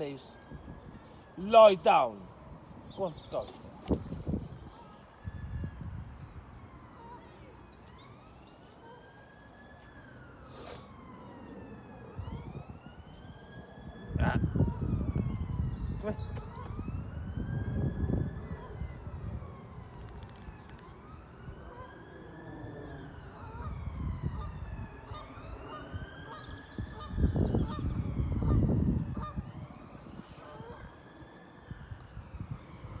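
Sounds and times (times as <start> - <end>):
distant siren wailing: 0.0 - 33.0
wind rumble on microphone: 3.6 - 7.0, 11.7 - 21.9, 22.6 - 31.0, 31.6 - 33.0.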